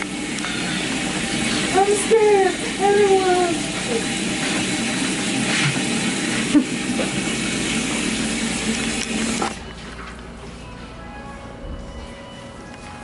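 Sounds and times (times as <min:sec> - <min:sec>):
water splashing into sink: 0:00.0 - 0:09.6
water spraying onto hair: 0:00.0 - 0:09.6.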